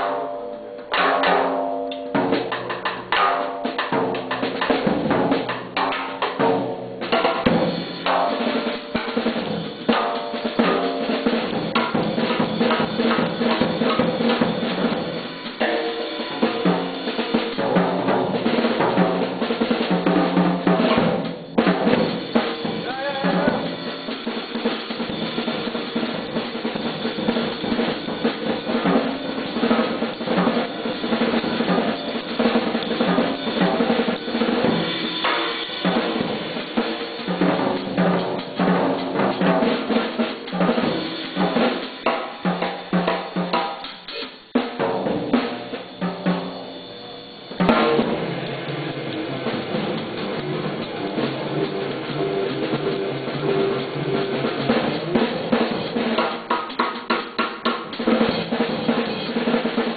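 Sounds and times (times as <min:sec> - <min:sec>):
jazz drum solo: 0:00.0 - 0:59.9.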